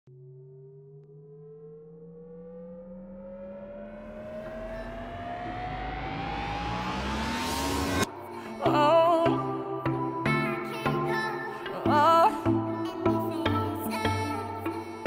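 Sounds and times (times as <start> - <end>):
rising pitched tone: 0.1 - 10.2
held low chord: 0.1 - 15.0.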